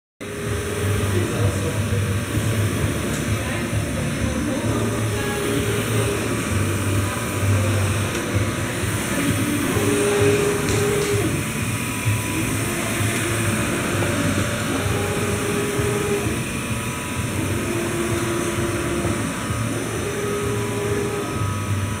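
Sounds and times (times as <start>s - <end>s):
constant machine hum: 0.2s - 22.0s
printer carriage whine: 0.2s - 22.0s.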